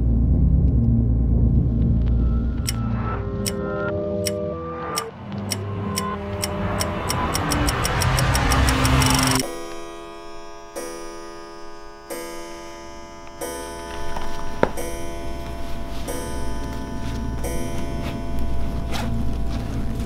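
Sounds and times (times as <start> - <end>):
music: 0.0 - 20.0
sustained music chords: 0.0 - 20.0
clock ticking: 2.6 - 2.8, 3.4 - 3.6, 4.2 - 9.6, 10.7 - 19.3.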